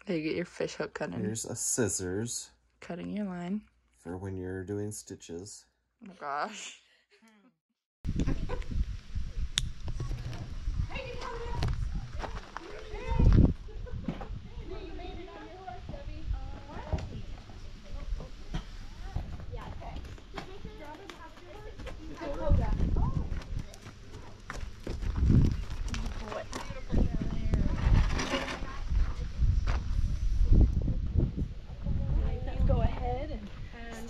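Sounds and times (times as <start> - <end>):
horses stepping on dirt: 9.8 - 14.4, 16.5 - 29.9.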